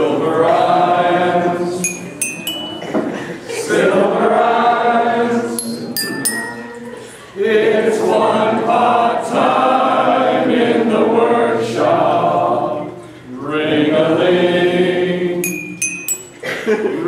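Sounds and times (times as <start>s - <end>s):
men singing together: 0.0s - 6.4s, 7.4s - 15.7s.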